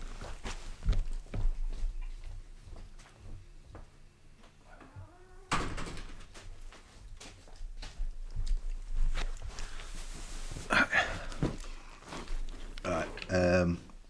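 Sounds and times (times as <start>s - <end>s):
shuffling: 0.0s - 5.2s, 6.1s - 14.0s
door pushed shut: 5.5s - 6.3s.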